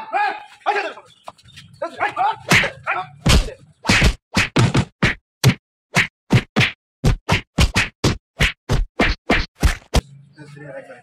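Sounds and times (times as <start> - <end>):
punch and whack effects: 2.5 - 10.0.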